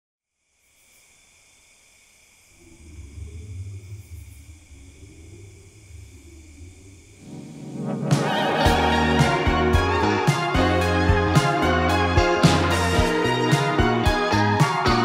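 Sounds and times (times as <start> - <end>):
hiss: 0.3 - 9.3
low rumbling drone: 2.5 - 15.0
band music: 8.1 - 15.0.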